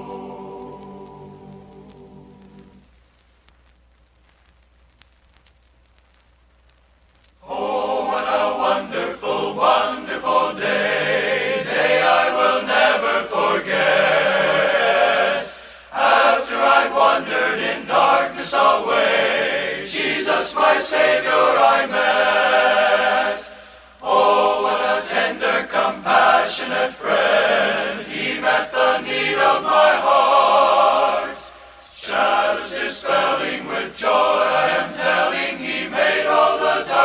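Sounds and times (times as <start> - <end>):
men's choir singing a hymn: 0.0 - 2.8, 7.4 - 37.0.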